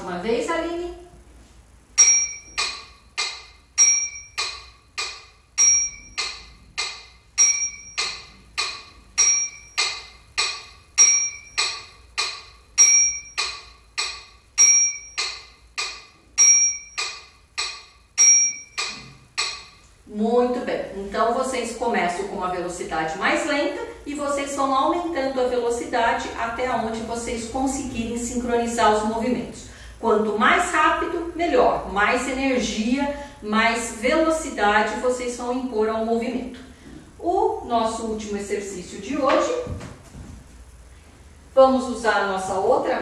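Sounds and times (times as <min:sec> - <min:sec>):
electronic metronome ticking: 0:02.0 - 0:19.9.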